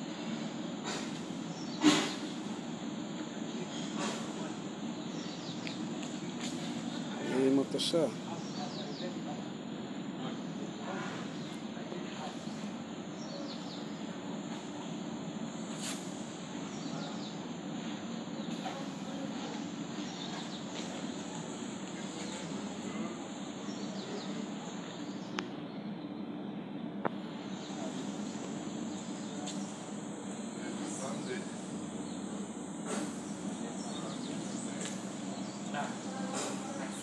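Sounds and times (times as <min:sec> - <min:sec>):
low hum and murmur: 0:00.0 - 0:37.0.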